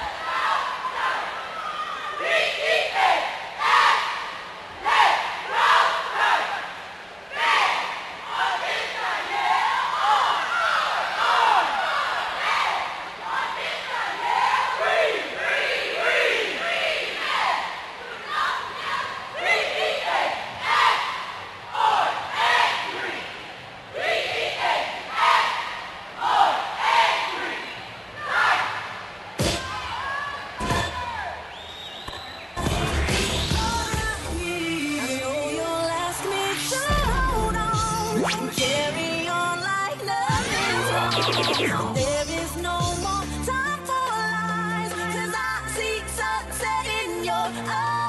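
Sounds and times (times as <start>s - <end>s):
cheerleaders shouting in unison: 0.0s - 31.5s.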